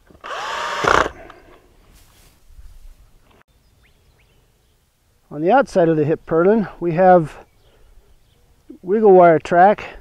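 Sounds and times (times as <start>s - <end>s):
cordless drill driving a screw: 0.1s - 1.1s.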